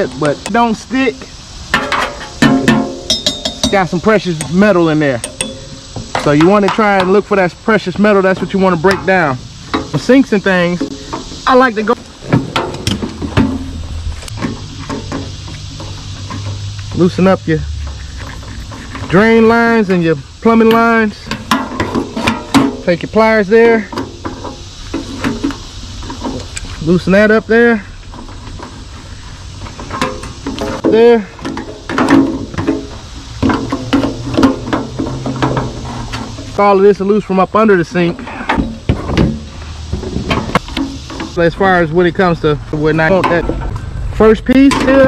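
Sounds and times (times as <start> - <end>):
low steady hum: 0.0 - 45.0
knocks and clunks of metal sink: 1.8 - 3.8, 29.8 - 36.5
pliers knocking on metal fitting: 1.8 - 4.6, 5.2 - 7.1
steel sink ringing: 1.8 - 7.3.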